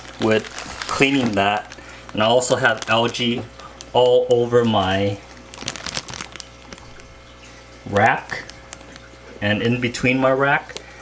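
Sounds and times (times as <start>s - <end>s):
plastic bag crinkling: 0.0s - 9.4s.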